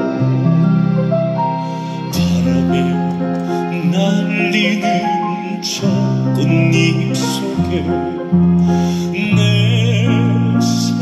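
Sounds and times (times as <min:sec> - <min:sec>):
digital piano chords: 0:00.0 - 0:11.0
person singing with vibrato: 0:02.0 - 0:11.0.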